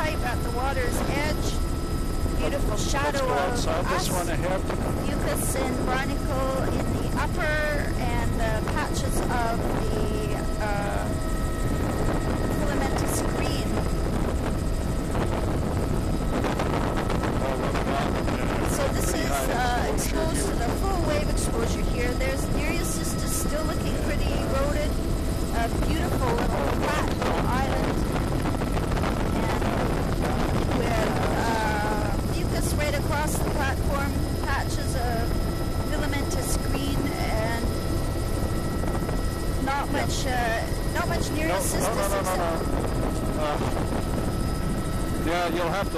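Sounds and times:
voices: 0.0 - 14.1, 17.3 - 28.2, 29.3 - 29.9, 30.6 - 45.9
faint high whines: 0.0 - 45.9
helicopter rotor and engine drone: 0.0 - 45.9.

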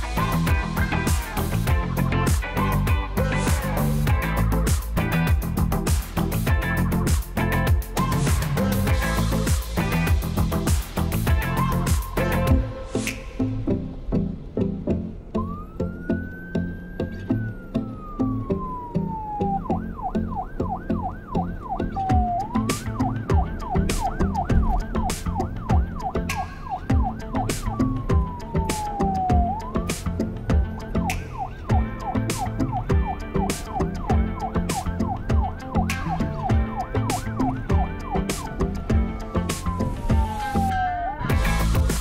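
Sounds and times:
police siren wailing and yelping: 0.0 - 5.6, 6.5 - 13.6, 15.0 - 42.0
backing track with steady beat: 0.0 - 13.6, 18.6 - 42.0.

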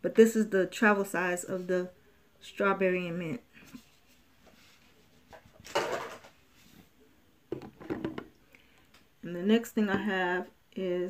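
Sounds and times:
bottles clattering: 5.7 - 6.3, 7.5 - 8.3.

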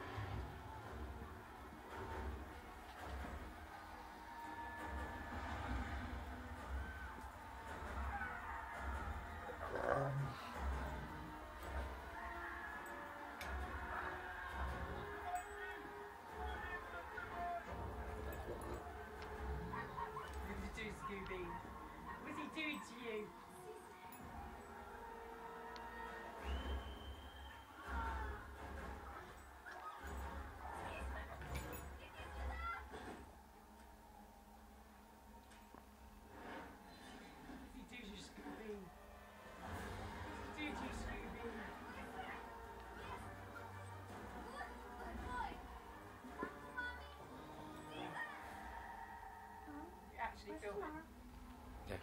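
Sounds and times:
television music and voices: 0.0 - 52.0.

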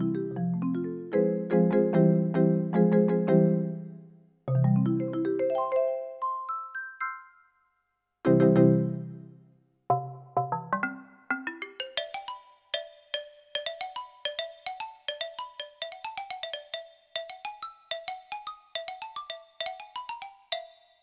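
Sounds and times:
electronic keyboard melody: 0.0 - 7.5, 8.3 - 12.0.

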